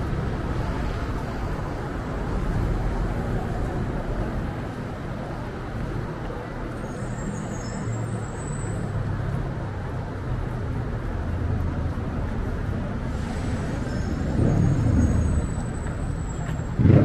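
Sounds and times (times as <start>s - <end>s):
bus engine rumbling: 0.0s - 17.0s
street traffic: 0.0s - 17.0s
brief high squeal: 6.8s - 8.8s.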